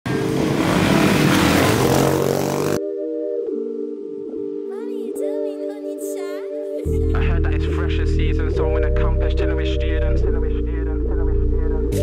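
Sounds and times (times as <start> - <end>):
motorbike engine revving: 0.1 - 2.8.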